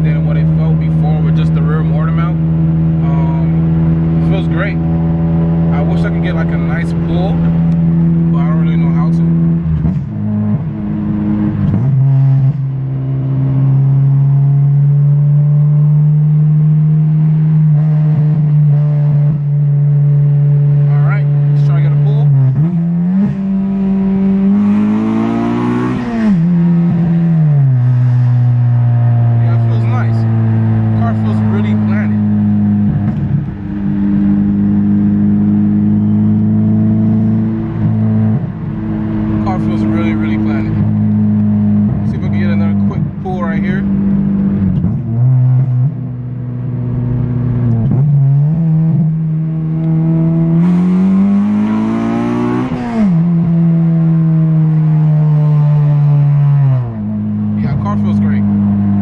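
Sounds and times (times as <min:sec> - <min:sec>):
car engine drone: 0:00.0 - 0:59.0.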